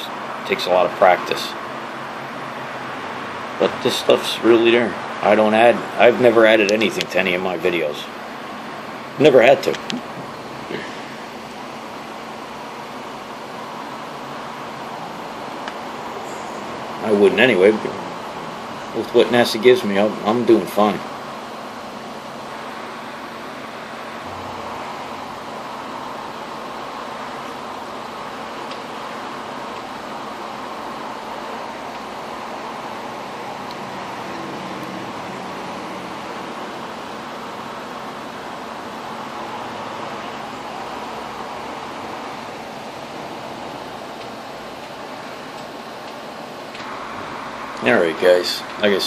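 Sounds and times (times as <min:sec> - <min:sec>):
room noise hiss: 0:00.0 - 0:49.0.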